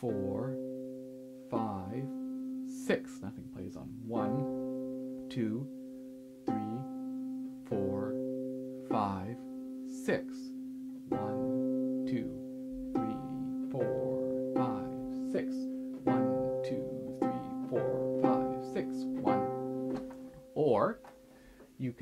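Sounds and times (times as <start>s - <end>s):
harp plucked notes: 0.0s - 21.6s.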